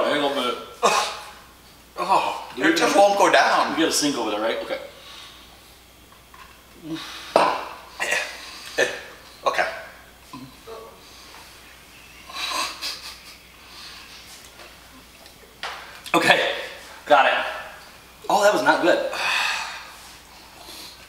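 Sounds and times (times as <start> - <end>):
man coughing and gagging: 0.8 - 1.4, 7.2 - 9.7.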